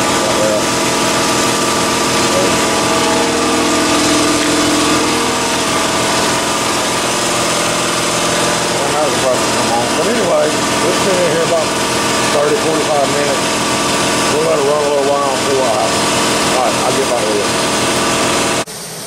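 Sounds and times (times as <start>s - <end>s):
water churning and bubbling: 0.0s - 16.8s
multi-tone hum: 0.0s - 18.7s
small motor running: 0.0s - 19.0s.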